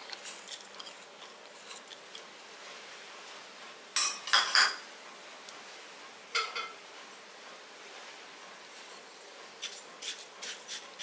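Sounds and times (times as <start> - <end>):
metal utensils clinking on a pan: 4.0 - 4.8, 6.4 - 6.8.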